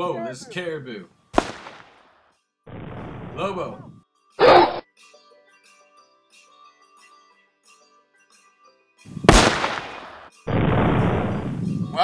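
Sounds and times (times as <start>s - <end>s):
rifle shot echoing: 1.4s - 2.0s, 9.3s - 11.5s.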